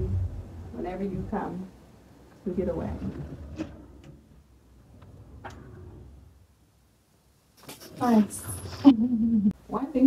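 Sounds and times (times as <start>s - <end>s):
sliding door clicks on track: 2.8s - 6.4s.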